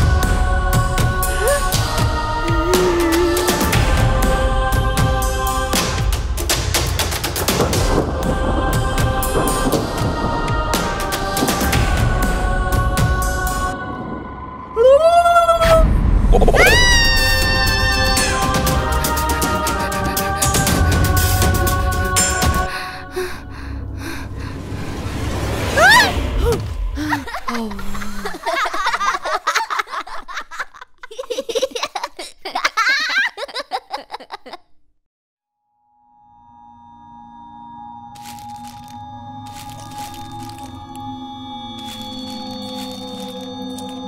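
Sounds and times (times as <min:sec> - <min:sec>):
cartoon babies giggling: 0:27.0 - 0:34.8.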